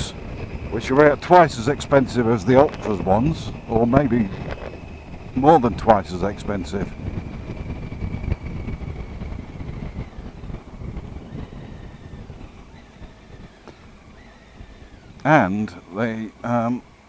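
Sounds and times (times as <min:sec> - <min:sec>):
motorcycle engine rumble: 0:00.0 - 0:17.0
wind noise on microphone: 0:00.0 - 0:17.0.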